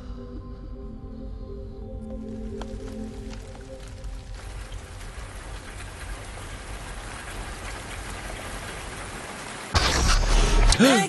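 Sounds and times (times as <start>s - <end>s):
steady rain falling: 2.0s - 11.0s.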